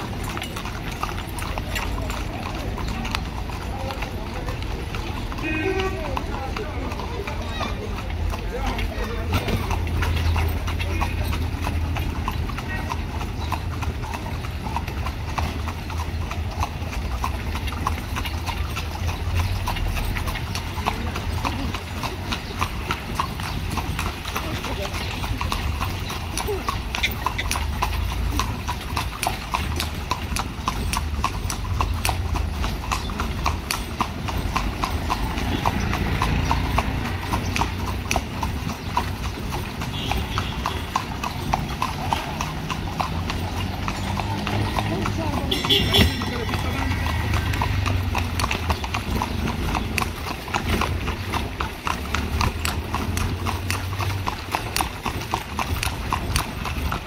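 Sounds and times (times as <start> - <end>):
hooves clip-clopping on pavement: 0.0 - 57.0.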